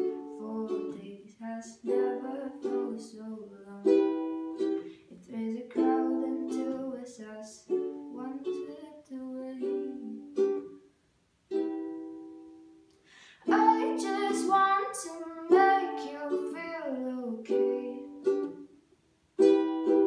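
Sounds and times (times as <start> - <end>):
ukulele strummed chords: 0.0 - 10.9, 11.5 - 18.8, 19.4 - 20.0.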